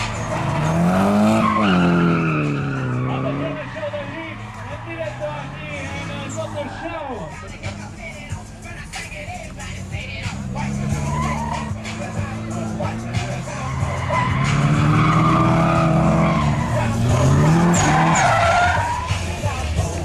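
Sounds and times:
car engine revving: 0:00.0 - 0:20.0
tyres squealing: 0:00.0 - 0:20.0.

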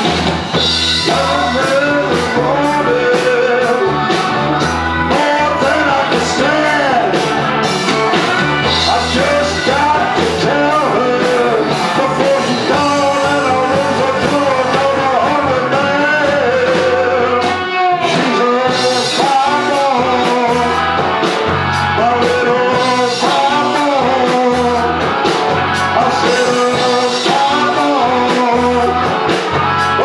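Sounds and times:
drums: 0:00.0 - 0:30.0
electric guitar: 0:00.0 - 0:30.0
keyboard: 0:00.0 - 0:30.0
male lead vocal: 0:00.6 - 0:30.0.

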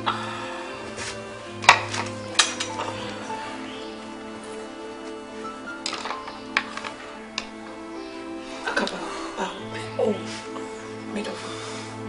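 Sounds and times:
background music sustained notes: 0:00.0 - 0:12.0.

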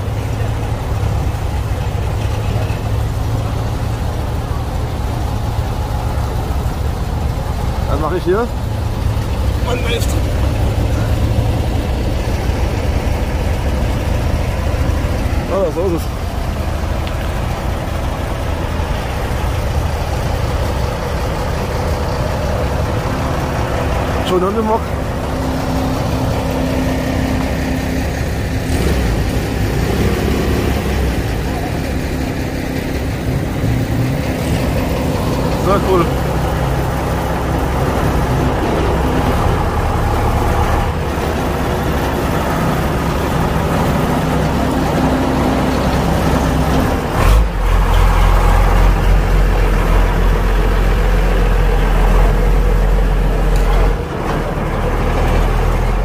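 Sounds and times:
truck engine rumbling past: 0:00.0 - 0:56.0.

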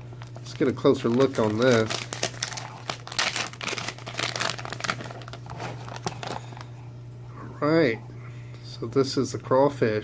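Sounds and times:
steady low hum: 0:00.0 - 0:10.0
plastic bag crinkling: 0:00.1 - 0:06.8.

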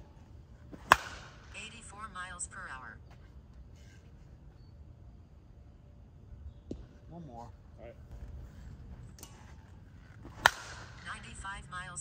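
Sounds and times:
bat striking softball: 0:00.7 - 0:01.5, 0:10.2 - 0:11.1.

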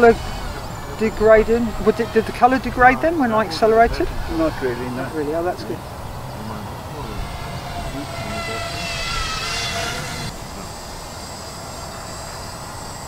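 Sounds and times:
electric motors whining: 0:00.0 - 0:13.0.

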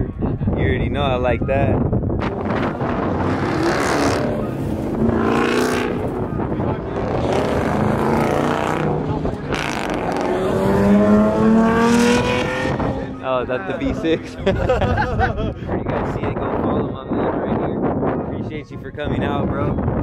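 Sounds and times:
car engine revving: 0:02.2 - 0:14.5.

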